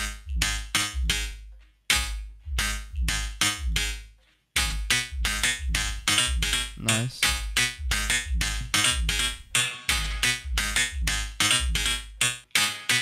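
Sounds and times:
deep sub-bass: 0.0 - 4.0, 4.6 - 12.2
beatbox drums: 4.6 - 12.4
pitched vocal layers: 6.8 - 7.4.

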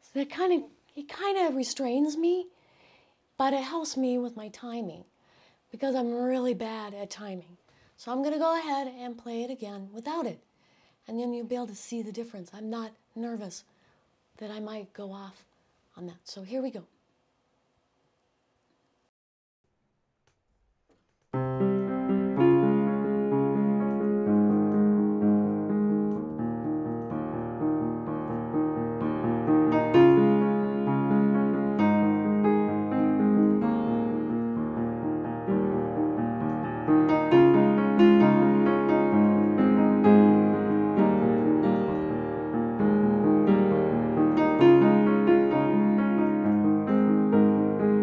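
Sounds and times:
upright piano playing chords: 21.4 - 48.0.

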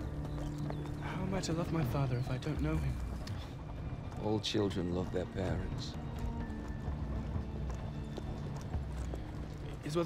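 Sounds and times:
horse hooves clip-clopping: 0.0 - 10.0.

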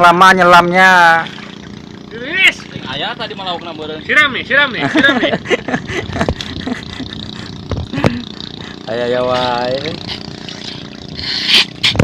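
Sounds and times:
man calling out: 2.1 - 4.8.

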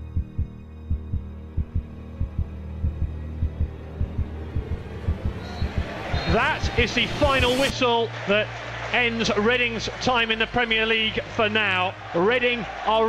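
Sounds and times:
low drone: 0.0 - 7.7
heartbeat thumps: 0.1 - 7.6
commentator speaking: 6.1 - 13.0.

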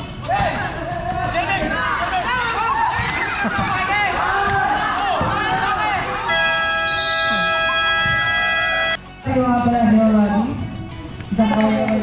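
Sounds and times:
crowd shouting and cheering: 0.2 - 9.1
game buzzer horn blast: 6.3 - 9.0.

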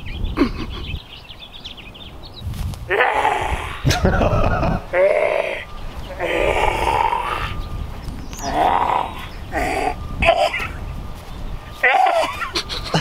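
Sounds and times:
man making wordless vocal sounds: 2.9 - 7.6.

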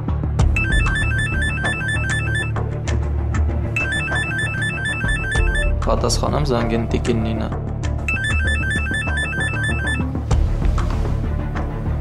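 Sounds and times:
electronic phone ringtone melody: 0.6 - 2.6, 3.8 - 5.8, 8.1 - 10.1
background music with bass and drums: 10.0 - 12.0.

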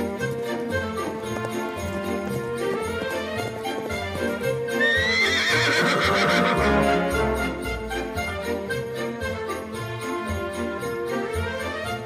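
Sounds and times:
music: 0.0 - 12.0
horse whinnying: 4.6 - 7.9.

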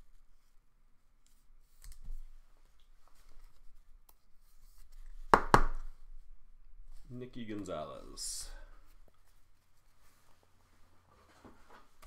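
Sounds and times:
plastic sleeve rustling: 6.8 - 12.0.

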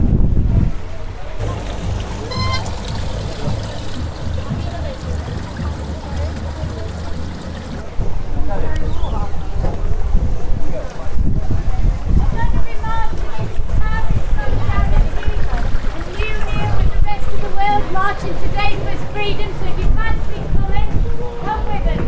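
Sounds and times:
wind on microphone: 0.0 - 5.7, 7.7 - 22.0
people's voices: 0.5 - 22.0
water pouring into plastic bottle: 1.4 - 7.8, 15.1 - 16.8.

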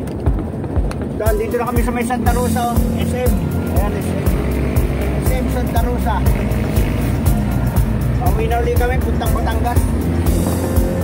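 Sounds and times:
music playing: 0.0 - 11.0
vehicle engine and road noise: 0.0 - 11.0.

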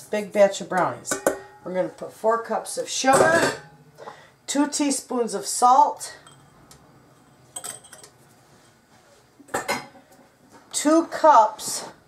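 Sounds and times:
spoon clinking against metal bowl: 6.2 - 6.6, 7.2 - 8.1.

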